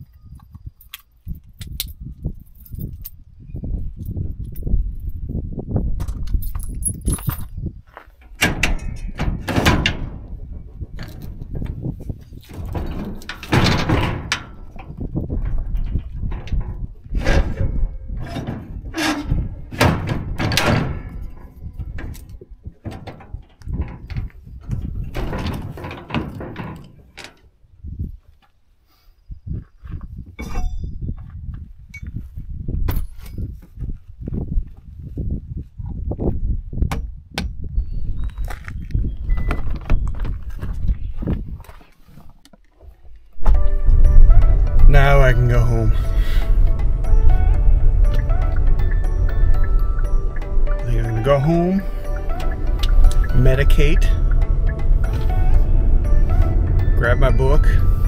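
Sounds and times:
metal clanks and rattles of trailer hitch: 0:06.0 - 0:27.5, 0:30.4 - 0:31.0, 0:43.4 - 0:58.0.

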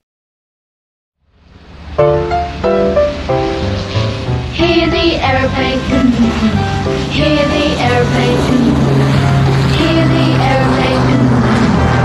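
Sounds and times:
rushing aeroplane engine: 0:01.4 - 0:12.0.

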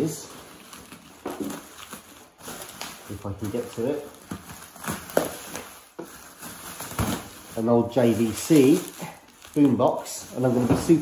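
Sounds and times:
bubble wrap crinkling: 0:00.0 - 0:11.0.

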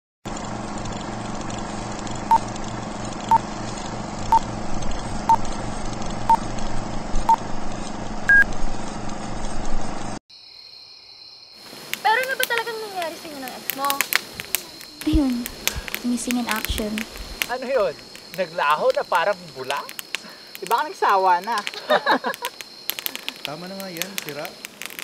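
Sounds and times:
film projector hiss and hum: 0:00.3 - 0:10.2
higher beep: 0:08.3 - 0:08.5.

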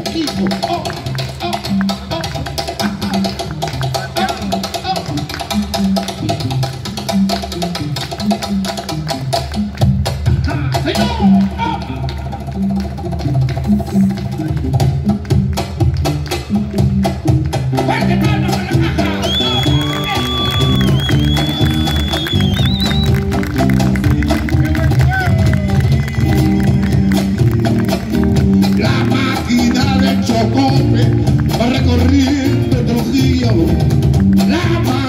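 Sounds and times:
bass notes: 0:00.0 - 0:35.0
cajon rhythm: 0:00.0 - 0:35.0
guitars playing: 0:00.0 - 0:35.0.

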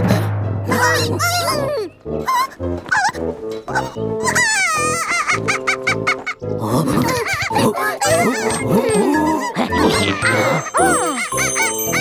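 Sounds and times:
background music: 0:00.0 - 0:12.0
squeaky cartoon creature vocalizations: 0:00.7 - 0:06.1, 0:06.7 - 0:12.0
cartoon bunny crying wail: 0:03.8 - 0:05.9, 0:07.0 - 0:12.0.

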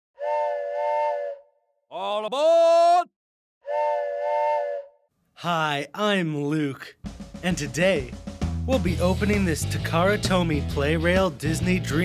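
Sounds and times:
steam train whistle: 0:00.2 - 0:01.5, 0:03.6 - 0:05.0.

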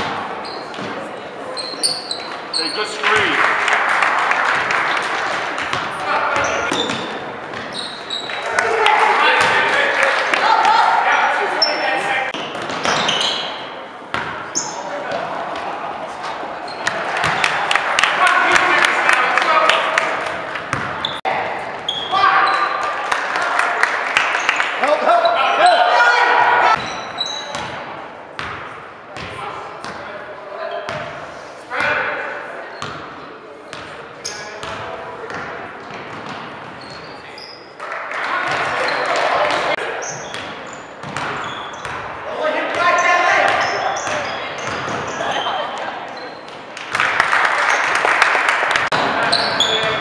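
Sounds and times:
sneaker squeaks: 0:00.0 - 0:03.1, 0:05.7 - 0:08.5, 0:11.1 - 0:14.9, 0:16.2 - 0:17.6, 0:20.7 - 0:22.8, 0:26.7 - 0:27.8, 0:32.7 - 0:33.1, 0:33.7 - 0:37.8, 0:38.5 - 0:42.1, 0:42.8 - 0:46.7, 0:49.0 - 0:50.0
crowd and player voices: 0:00.0 - 0:50.0
basketball bouncing on hardwood floor: 0:41.0 - 0:42.0.

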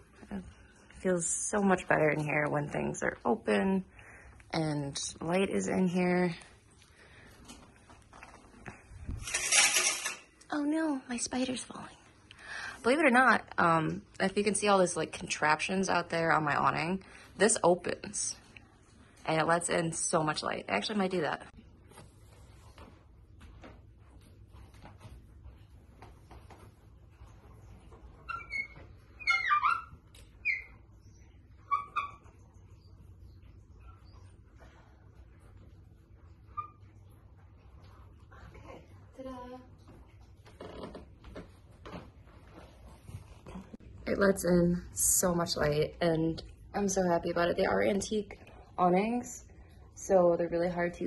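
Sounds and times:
curtain swishing along rod: 0:08.2 - 0:10.3.

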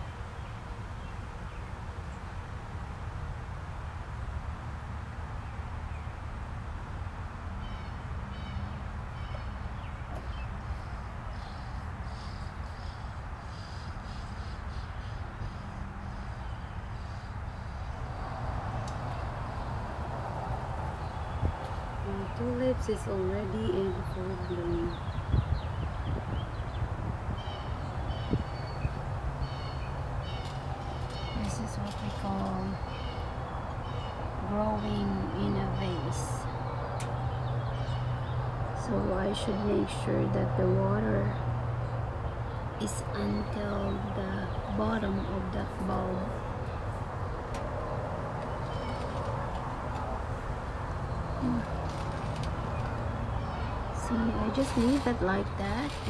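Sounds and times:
small birds chirping: 0:07.6 - 0:56.0.

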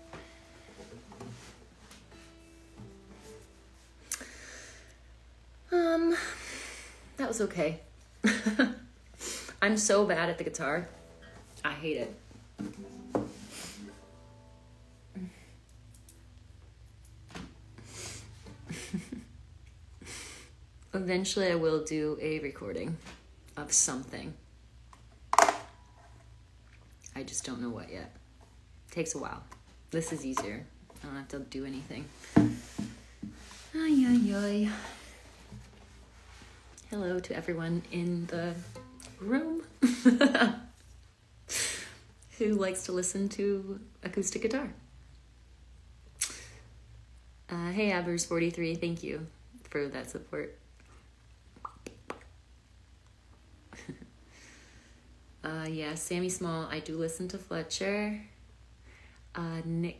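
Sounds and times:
low steady hum: 0:00.0 - 0:59.9
woman laughing quietly: 0:17.8 - 0:20.5, 0:53.7 - 0:54.6.

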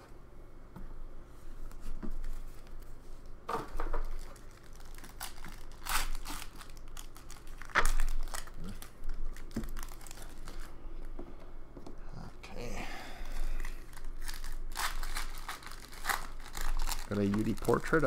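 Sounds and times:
wrappers crinkling and tearing: 0:03.7 - 0:10.8, 0:13.2 - 0:18.0.

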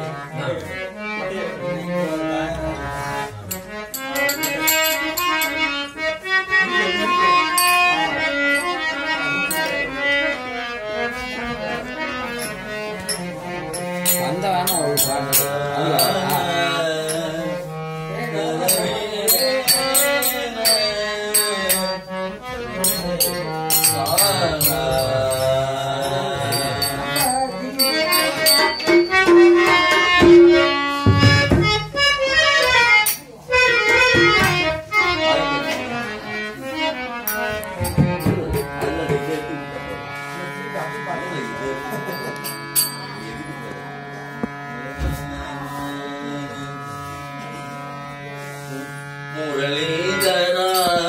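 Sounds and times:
harmonium chords: 0:00.0 - 0:51.0
steady instrumental drone: 0:02.3 - 0:51.0
sharp percussion strikes: 0:03.5 - 0:05.7, 0:07.5 - 0:09.9, 0:12.4 - 0:17.6, 0:18.6 - 0:31.9, 0:32.6 - 0:34.6, 0:37.2 - 0:39.2, 0:42.1 - 0:43.4, 0:50.2 - 0:51.0
voices singing devotional song: 0:14.1 - 0:28.8.

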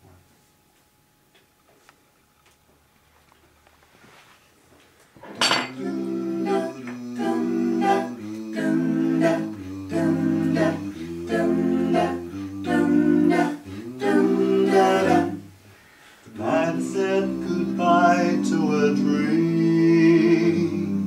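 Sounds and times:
faint room noise: 0:00.0 - 0:21.0.

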